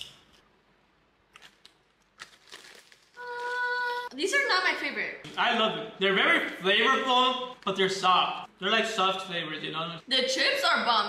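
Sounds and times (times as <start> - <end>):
potato chips being chewed: 1.3 - 3.6.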